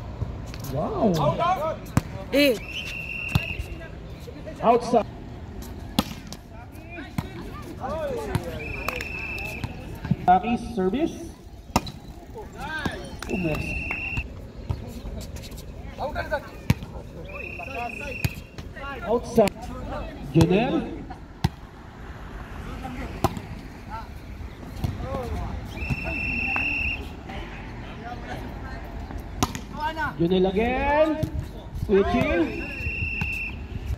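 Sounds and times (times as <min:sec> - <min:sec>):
faint players' voices: 0:00.0 - 0:33.9
referee's whistle blast: 0:02.5 - 0:03.8, 0:08.5 - 0:09.8, 0:13.1 - 0:14.3, 0:17.3 - 0:18.5, 0:25.7 - 0:27.1, 0:32.3 - 0:33.7
volleyball smack: 0:06.0 - 0:06.4.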